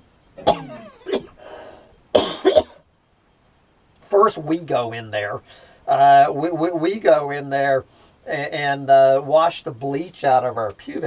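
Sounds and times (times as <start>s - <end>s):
man coughing: 0.4s - 1.4s, 2.2s - 2.8s.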